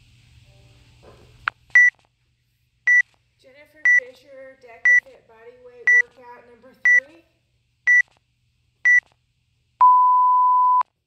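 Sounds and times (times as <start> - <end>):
timer beeps: 7.9 - 8.1, 9.8 - 10.8.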